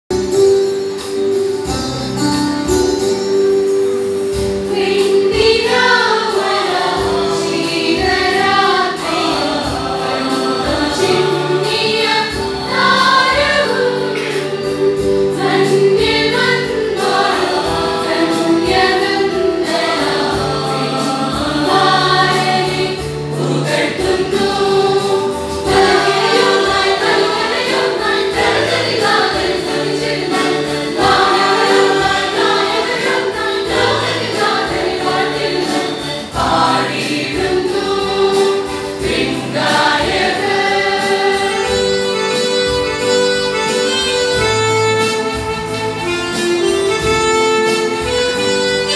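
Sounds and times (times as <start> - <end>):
instrumental accompaniment: 0.1 - 48.9
choir singing: 4.2 - 47.1
steady beat: 4.4 - 48.6.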